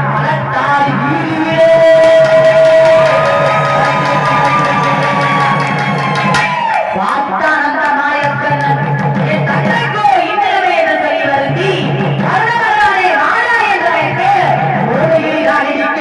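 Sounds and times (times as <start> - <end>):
woman singing through microphone: 0.0 - 3.0, 7.0 - 16.0
barrel drum beating: 2.2 - 6.6.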